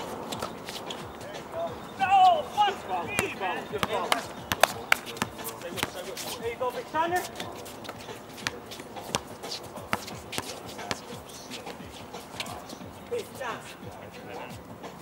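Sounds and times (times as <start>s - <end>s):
players' footsteps: 0.0s - 15.0s
basketball bouncing on hard court: 3.1s - 6.0s, 8.4s - 11.1s.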